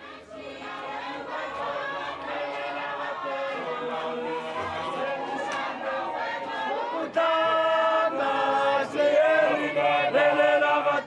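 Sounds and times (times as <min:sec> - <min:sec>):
crowd singing in chorus: 0:00.0 - 0:11.0.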